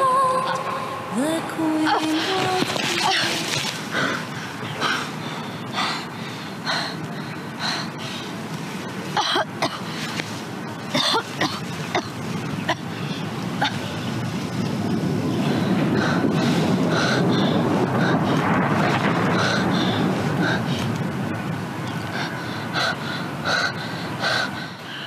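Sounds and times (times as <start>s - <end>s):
woman crying and sobbing: 0.0s - 3.5s
steady hiss: 0.0s - 25.0s.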